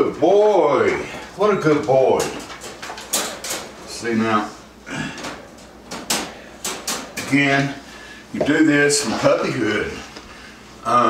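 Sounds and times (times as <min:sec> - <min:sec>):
wire crate rattling: 0:02.2 - 0:04.1.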